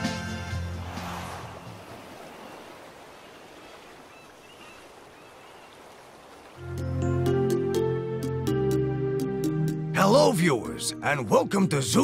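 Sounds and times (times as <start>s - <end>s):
sea waves: 0.0s - 8.0s.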